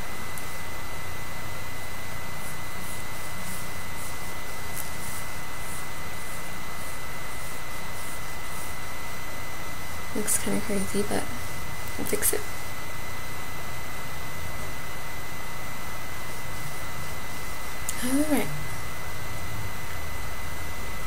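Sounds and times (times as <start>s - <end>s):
steady hiss with high whine: 0.0s - 21.0s
comb scratching through hair: 2.2s - 12.2s.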